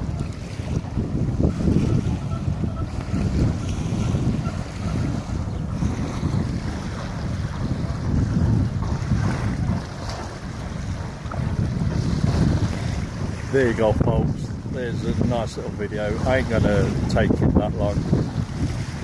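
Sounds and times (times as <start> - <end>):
small waves lapping at shore: 0.0 - 19.0
wind buffeting microphone: 0.0 - 19.0.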